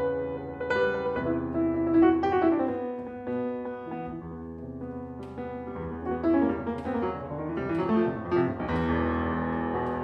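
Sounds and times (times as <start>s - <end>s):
solo jazz piano: 0.0s - 10.0s.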